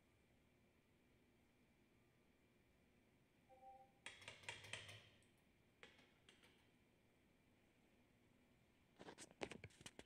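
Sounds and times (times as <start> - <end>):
sharp clicks and taps: 4.0 - 6.7.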